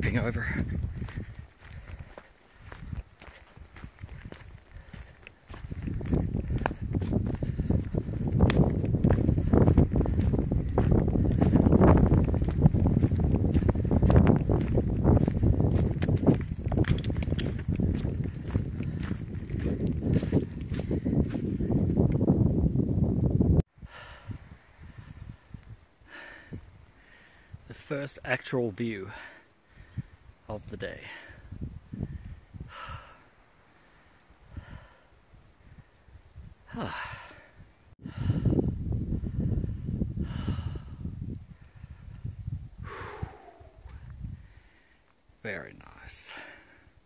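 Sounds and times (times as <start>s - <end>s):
wind buffeting microphone: 0.0s - 27.8s, 29.1s - 44.9s
footsteps on dirt and rock: 0.1s - 22.3s.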